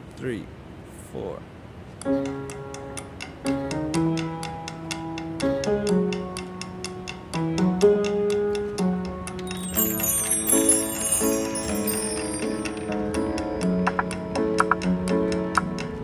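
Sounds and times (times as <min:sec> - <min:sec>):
piano chords: 0:09.4 - 0:15.6
high chiming electronic notes: 0:09.5 - 0:13.8
ticking beat: 0:09.5 - 0:15.9.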